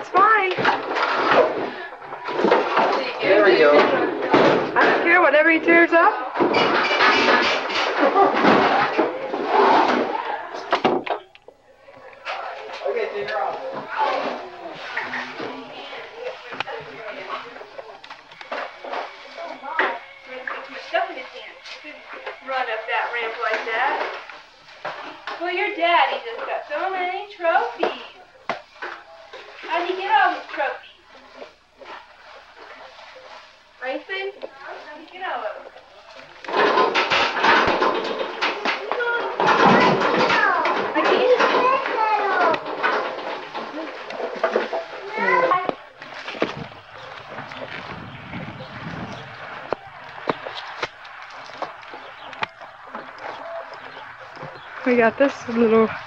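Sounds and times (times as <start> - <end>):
indistinct voices talking: 0.0 - 56.0.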